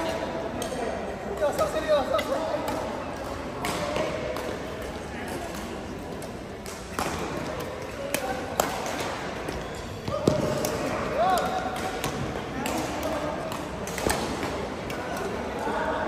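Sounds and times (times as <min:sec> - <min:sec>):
players' voices: 0:00.0 - 0:16.0.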